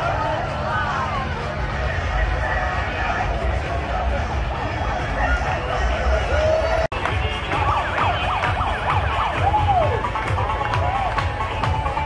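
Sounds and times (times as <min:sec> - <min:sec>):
music with thumping bass beat: 0:06.9 - 0:12.0
siren-like wail: 0:07.4 - 0:10.2.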